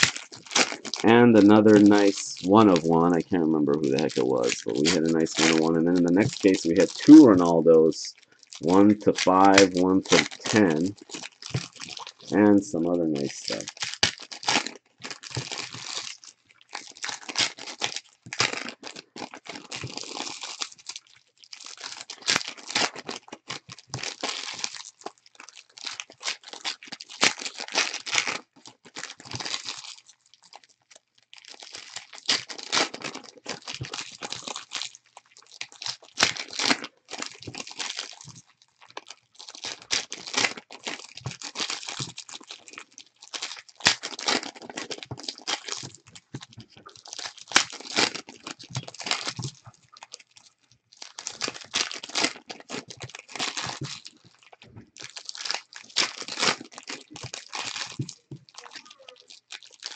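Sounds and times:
foil wrappers tearing and crinkling: 0.0 - 59.9.

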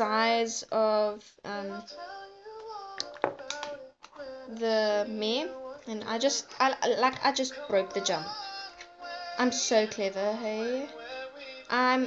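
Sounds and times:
girl singing quietly: 0.0 - 12.0.

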